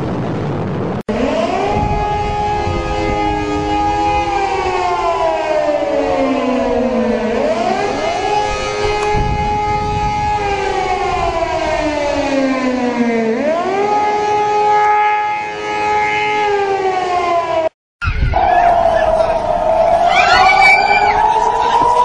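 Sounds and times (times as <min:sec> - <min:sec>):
air-raid sirens wailing: 0:01.1 - 0:22.0.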